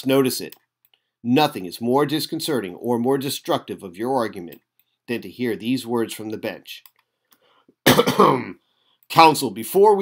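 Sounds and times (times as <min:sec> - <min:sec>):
person clearing throat: 0:07.8 - 0:08.6.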